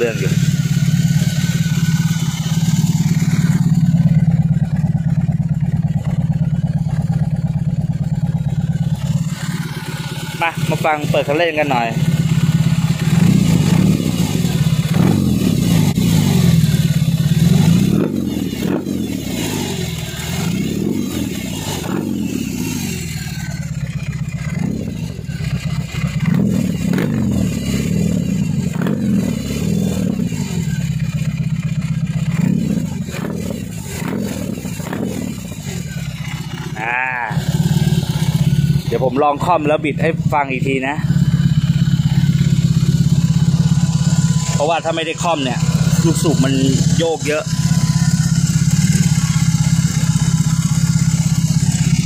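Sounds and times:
motorcycle engine revving: 0.0s - 52.0s.

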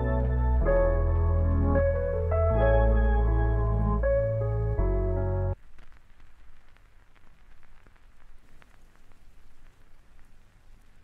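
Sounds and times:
rain hissing: 0.0s - 11.0s
raindrops ticking on hard surface: 5.6s - 11.0s.

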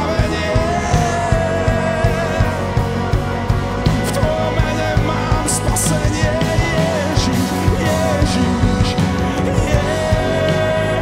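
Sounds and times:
live rock band playing: 0.0s - 11.0s
person singing: 0.0s - 11.0s.

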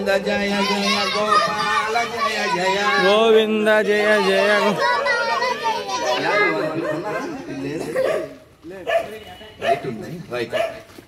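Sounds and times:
dog barking: 8.0s - 10.9s.

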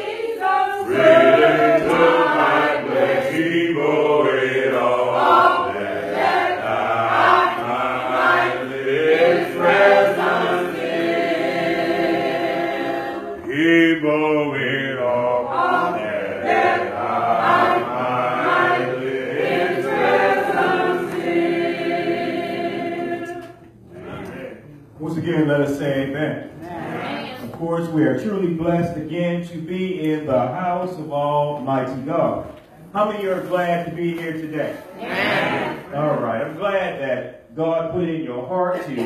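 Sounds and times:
congregation singing a hymn: 0.0s - 39.0s.

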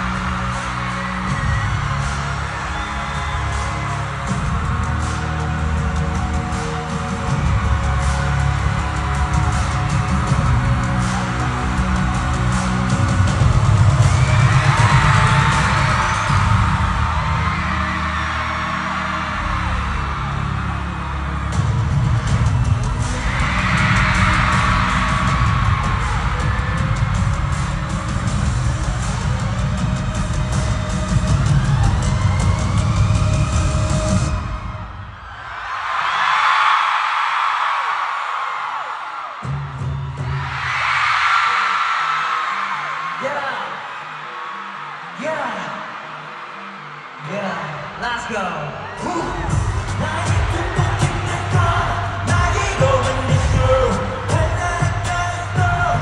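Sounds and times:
loud pop music with heavy bass: 0.0s - 35.2s, 39.4s - 56.0s
crowd screaming: 0.0s - 56.0s.

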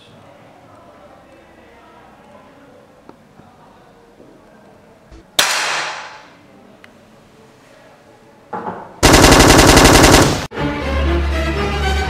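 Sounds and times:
air pistol shot: 5.4s - 6.3s.

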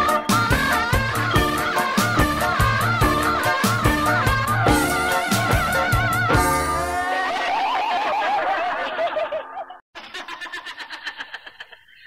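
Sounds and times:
wavering pop vocal: 0.0s - 7.9s.

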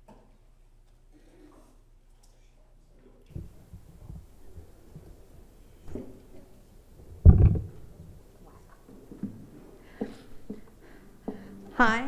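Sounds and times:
faint rustling: 3.3s - 11.8s
guitar handling thump: 7.2s - 7.9s.

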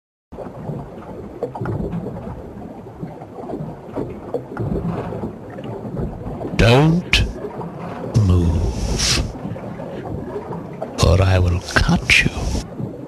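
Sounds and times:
water washing: 0.6s - 12.8s.

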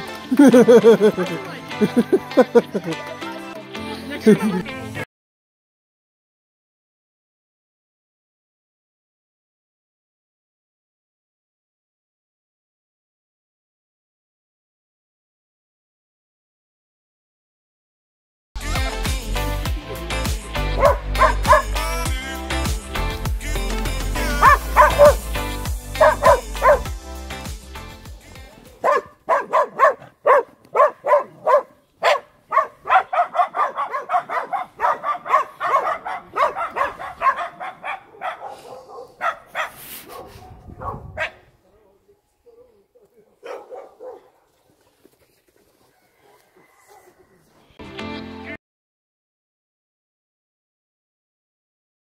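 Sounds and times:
music with steady bass: 18.6s - 28.8s, 47.8s - 48.6s
small dogs yapping: 20.8s - 21.7s, 24.4s - 25.3s, 26.0s - 26.9s, 28.8s - 41.4s, 43.4s - 44.4s.

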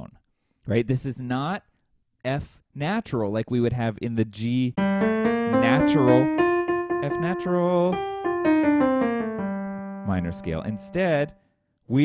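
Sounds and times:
piano playing descending scale: 4.8s - 11.4s.

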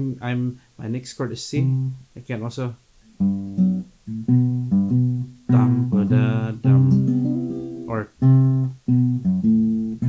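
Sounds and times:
acoustic guitar playing: 1.6s - 2.1s, 3.0s - 10.0s.

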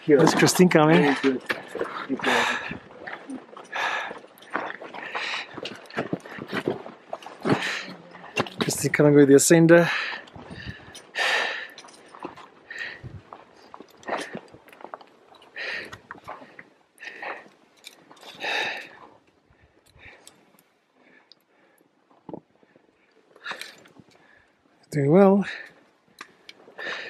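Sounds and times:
hard rhythmic breathing: 0.1s - 9.1s, 9.7s - 24.7s, 25.4s - 27.0s.

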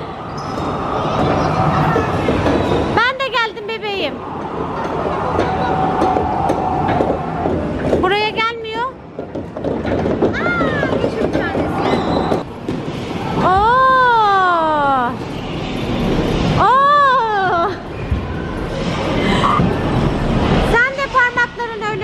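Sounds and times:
arcade din with clicks and clatters: 0.4s - 13.8s.

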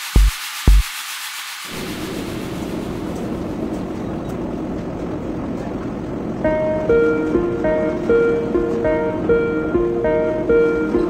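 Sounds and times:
kick drum beating: 0.0s - 0.9s
rushing noise wash: 0.0s - 11.0s
plucked guitar music: 6.4s - 11.0s.

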